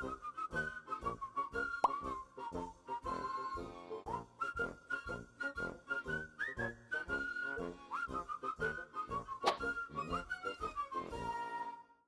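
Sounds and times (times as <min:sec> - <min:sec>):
whistled melody background music: 0:00.0 - 0:12.0
rising plop sound effect: 0:01.8 - 0:02.1.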